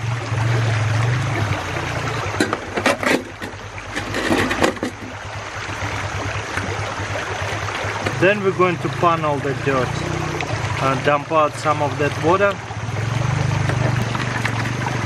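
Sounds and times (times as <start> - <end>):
stream water running: 0.0 - 15.0
metallic clacks and knocks: 2.4 - 5.2.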